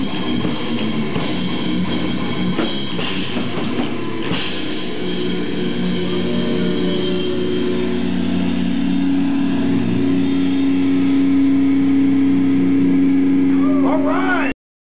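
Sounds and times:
distorted electric guitar and bass: 0:00.0 - 0:14.6.

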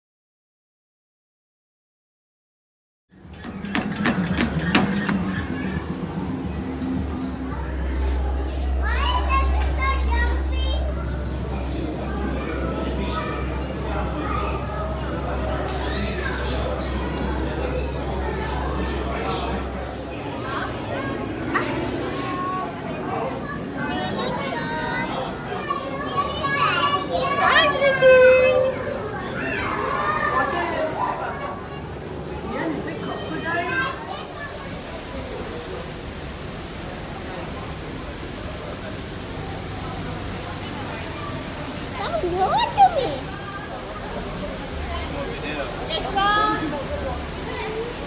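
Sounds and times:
child's excited calls: 0:27.1 - 0:28.9, 0:42.0 - 0:43.2.

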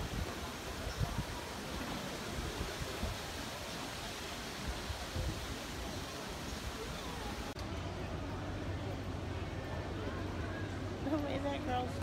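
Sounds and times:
outdoor city square hiss: 0:00.0 - 0:12.0.

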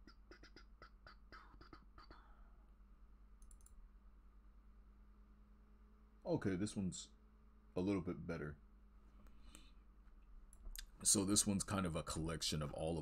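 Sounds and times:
low electrical hum: 0:00.0 - 0:13.0
faint computer clicks: 0:03.4 - 0:03.8.

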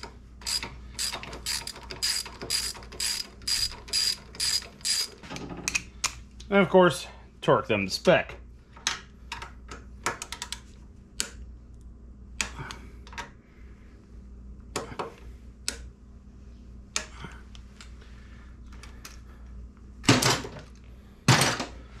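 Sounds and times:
torque wrench ratcheting and clicking: 0:00.0 - 0:05.2.

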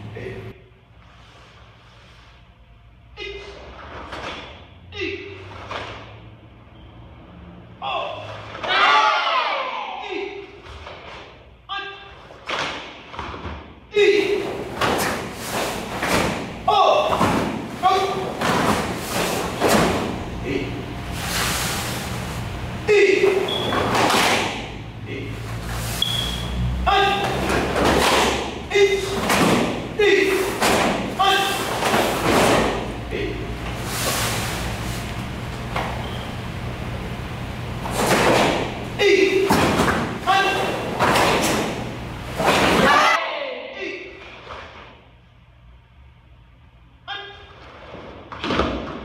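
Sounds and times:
short shouts: 0:07.8 - 0:10.5, 0:11.7 - 0:12.1, 0:13.9 - 0:14.4, 0:16.6 - 0:17.2, 0:17.8 - 0:18.3, 0:22.9 - 0:23.6, 0:26.8 - 0:27.5, 0:28.4 - 0:29.2, 0:29.9 - 0:33.4, 0:39.0 - 0:39.5, 0:40.2 - 0:40.9, 0:42.7 - 0:44.2, 0:47.0 - 0:47.6.

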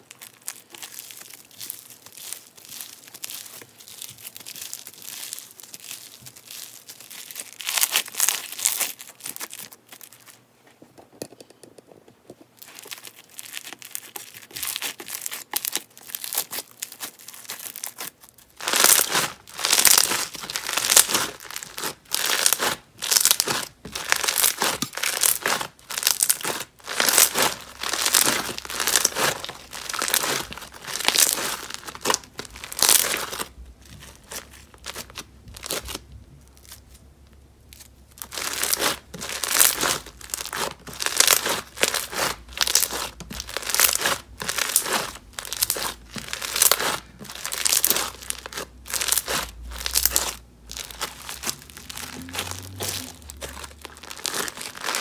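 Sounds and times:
foam slime crunchy crackling: 0:00.0 - 0:10.4, 0:12.6 - 0:37.0, 0:37.7 - 0:55.0.

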